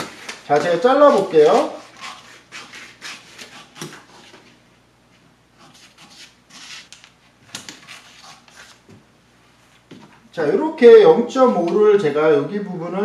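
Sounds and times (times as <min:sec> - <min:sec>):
scissors snipping paper: 0:00.0 - 0:04.2
paper rustling: 0:00.0 - 0:04.6.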